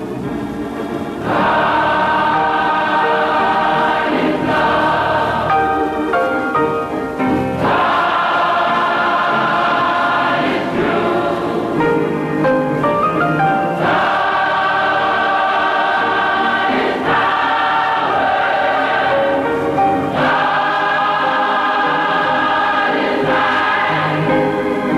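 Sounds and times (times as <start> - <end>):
gospel choir singing: 1.1 - 6.4, 7.4 - 12.8, 13.6 - 24.9.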